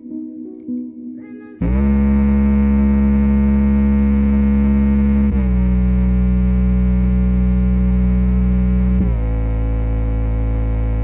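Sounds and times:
deep synthesizer bass tones: 0:01.6 - 0:11.0.

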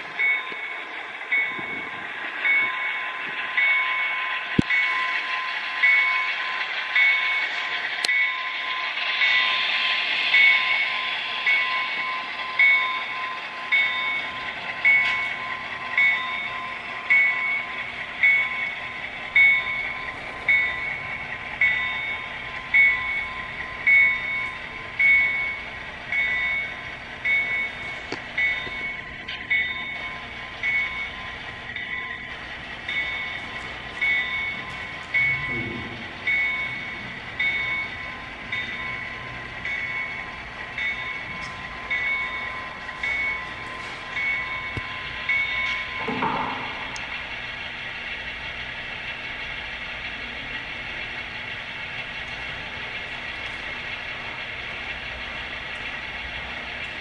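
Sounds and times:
locomotive bell ringing: 0:00.0 - 0:57.0
steady engine hum: 0:08.9 - 0:57.0.

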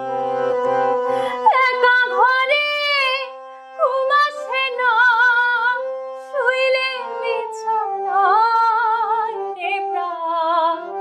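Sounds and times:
woman singing with vibrato: 0:01.3 - 0:11.0.

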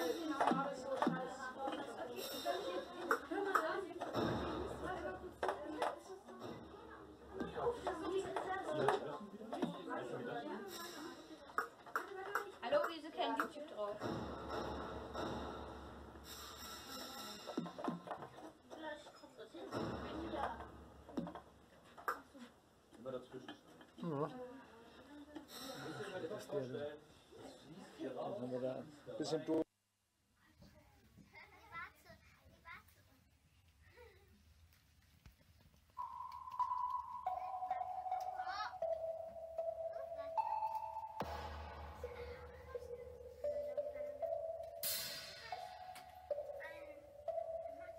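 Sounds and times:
short electronic pings and clicks: 0:36.0 - 0:37.4
sustained electronic tones: 0:36.0 - 0:47.9.

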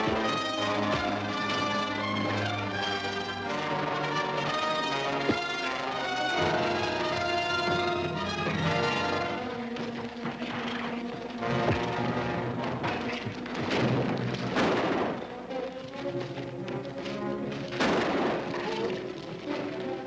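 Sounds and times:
dramatic film score music: 0:00.0 - 0:20.0
crashing and rumbling effects: 0:08.1 - 0:15.3.

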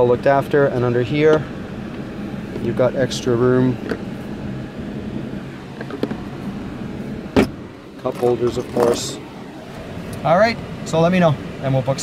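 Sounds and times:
car engine hum: 0:00.0 - 0:12.0
armrest lid clunk: 0:03.8 - 0:04.4, 0:05.6 - 0:09.0.

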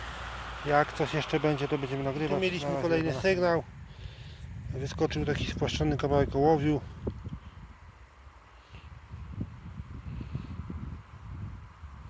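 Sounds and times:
wind on microphone: 0:02.7 - 0:08.0, 0:08.7 - 0:12.0.

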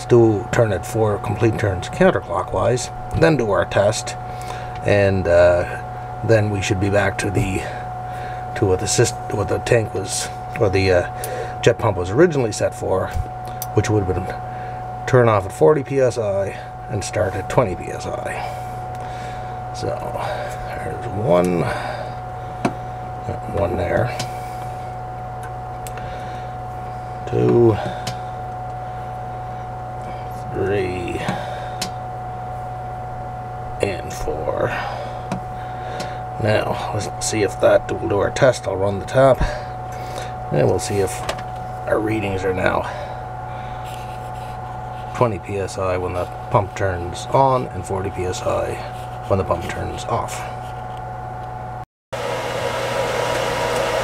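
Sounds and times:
steady background hum: 0:00.0 - 0:54.0.

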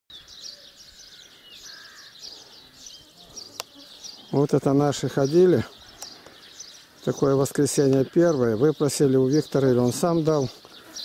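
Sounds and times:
birds chirping: 0:00.1 - 0:11.0
insects buzzing: 0:00.5 - 0:08.4.

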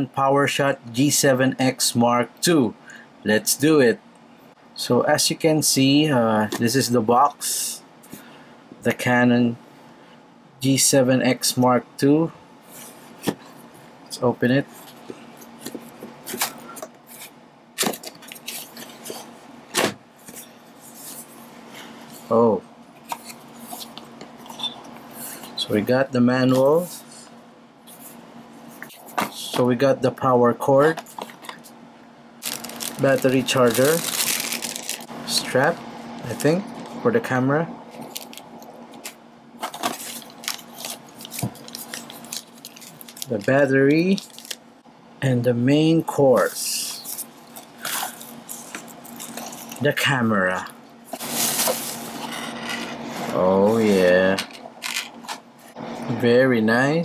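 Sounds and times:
plastic bags crinkling: 0:32.4 - 0:35.1, 0:38.0 - 0:38.6, 0:39.6 - 0:44.6.

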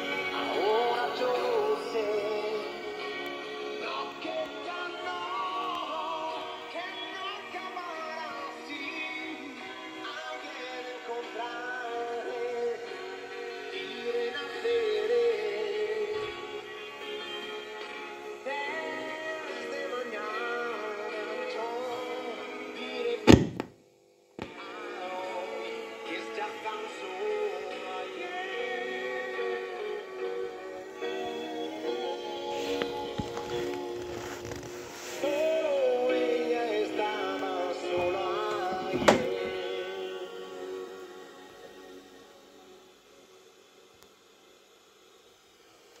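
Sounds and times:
vocal music from radio: 0:00.0 - 0:23.6, 0:24.3 - 0:46.0
loud thunk: 0:23.3 - 0:23.7, 0:38.9 - 0:39.4.

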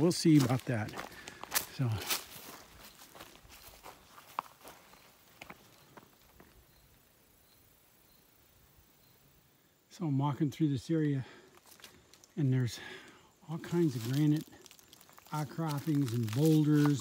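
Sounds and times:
footsteps on dry leaves: 0:00.0 - 0:06.4, 0:11.5 - 0:12.3, 0:13.6 - 0:17.0.

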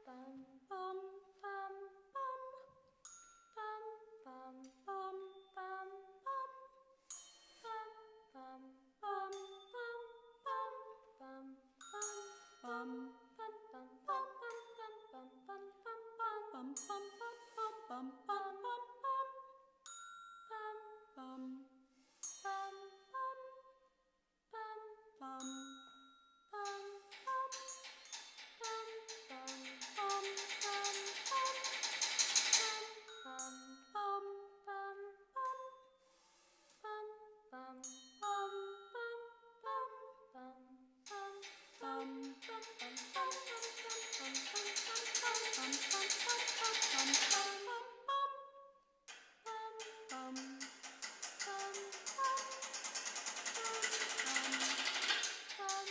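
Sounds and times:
women singing sustained notes: 0:03.6 - 0:06.8, 0:07.6 - 0:19.6, 0:20.5 - 0:21.8, 0:22.5 - 0:23.8, 0:36.8 - 0:48.7, 0:49.5 - 0:50.7.

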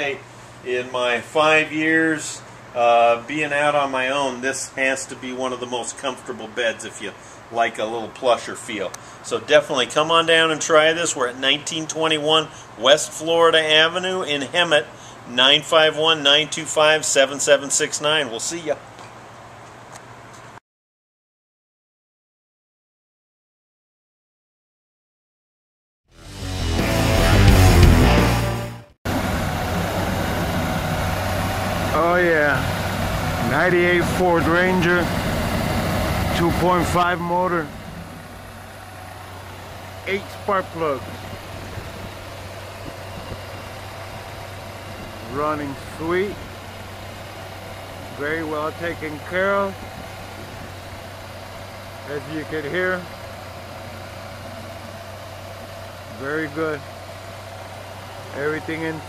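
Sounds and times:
music: 0:26.2 - 0:28.9
car engine idling: 0:29.1 - 0:59.0.

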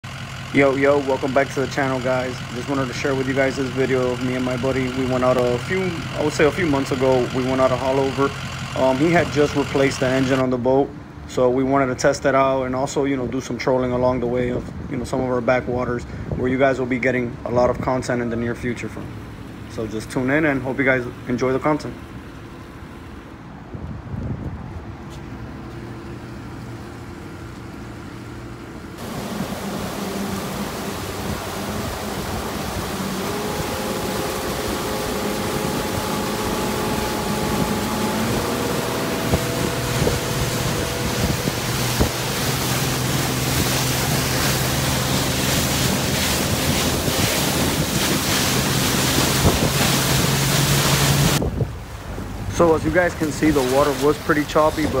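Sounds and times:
outboard motor running: 0:00.0 - 0:10.6, 0:25.8 - 0:55.0
wind rush on microphone: 0:23.6 - 0:25.0, 0:29.0 - 0:55.0
wake splashing: 0:29.0 - 0:55.0.

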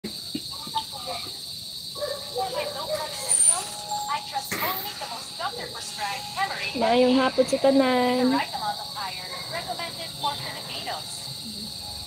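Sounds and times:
steady high-pitched hum: 0:00.1 - 0:12.0
soft low talking: 0:10.4 - 0:11.8.

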